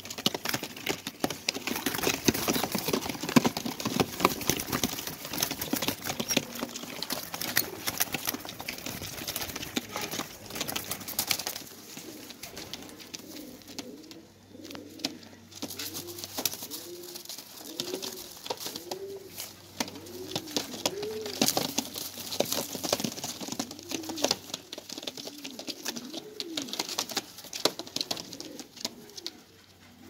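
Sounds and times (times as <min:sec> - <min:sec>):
pigeons cooing: 0:00.0 - 0:30.0
sharp clicks and rustles: 0:00.0 - 0:30.0.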